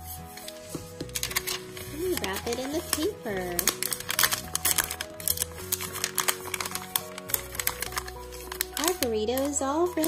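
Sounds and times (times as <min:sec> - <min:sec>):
background music: 0:00.0 - 0:10.0
paper wrapper crinkling: 0:00.0 - 0:10.0.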